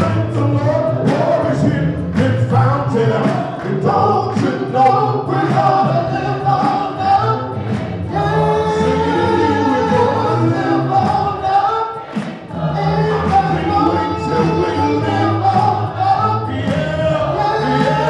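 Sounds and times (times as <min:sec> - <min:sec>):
man singing into microphone: 0:00.0 - 0:12.0, 0:12.7 - 0:18.0
group of voices singing: 0:00.0 - 0:18.0.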